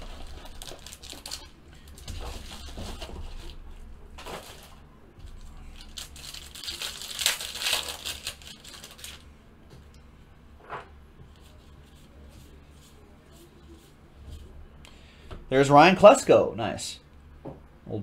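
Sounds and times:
plastic wrappers tearing and crinkling: 0:00.0 - 0:03.6, 0:05.4 - 0:09.2.

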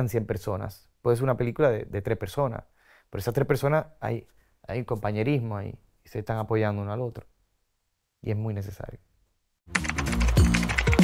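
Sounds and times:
music: 0:09.7 - 0:11.0.

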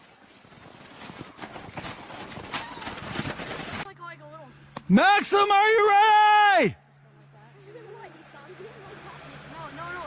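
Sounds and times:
footsteps crunching in snow: 0:00.0 - 0:03.9.

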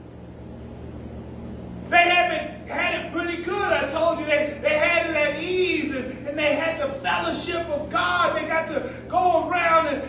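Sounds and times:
low steady hum: 0:00.0 - 0:10.0
man's voice: 0:01.9 - 0:10.0.

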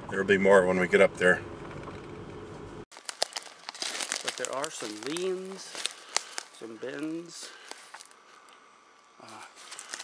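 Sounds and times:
vehicle engine and road hum: 0:00.0 - 0:08.2
footsteps through twigs: 0:02.9 - 0:08.6, 0:09.2 - 0:10.0.

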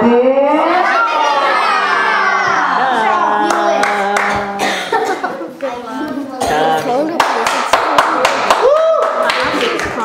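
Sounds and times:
group clapping: 0:02.2 - 0:04.8, 0:06.8 - 0:10.0
close sharp hand claps: 0:07.2 - 0:10.0.

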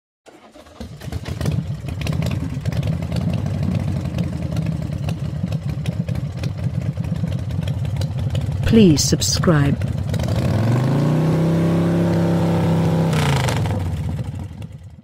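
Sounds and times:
engine starting and running: 0:00.2 - 0:15.0.

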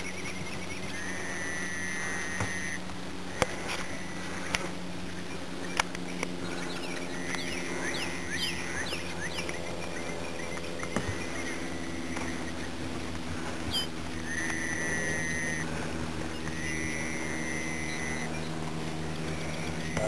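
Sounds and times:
steady low hum: 0:00.0 - 0:20.0
bird whistles: 0:13.7 - 0:15.6, 0:16.3 - 0:18.5, 0:19.4 - 0:20.0.

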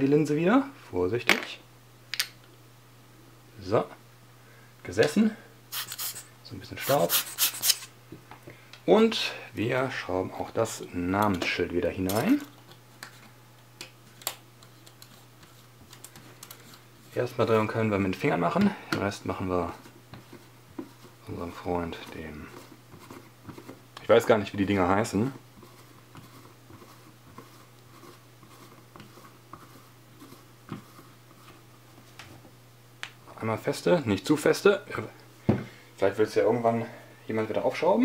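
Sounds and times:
faint steady hum: 0:00.0 - 0:38.0
faint rubbing: 0:05.7 - 0:07.9.

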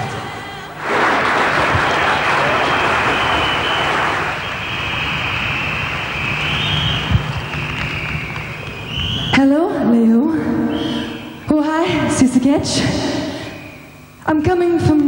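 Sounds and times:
audience applauding and cheering: 0:00.7 - 0:09.3.

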